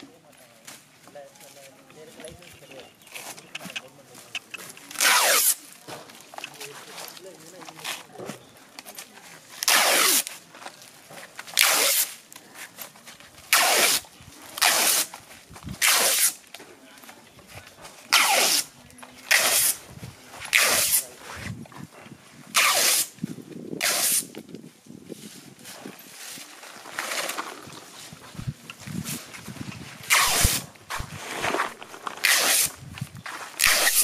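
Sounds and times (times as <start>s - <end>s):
adhesive tape pulled off roll: 4.8s - 5.7s, 9.6s - 10.4s, 11.5s - 12.2s, 13.5s - 14.0s, 14.6s - 15.1s, 15.8s - 16.4s, 18.1s - 18.7s, 19.3s - 19.8s, 20.5s - 21.1s, 22.5s - 23.2s, 23.8s - 24.4s, 30.0s - 32.8s, 33.5s - 34.0s.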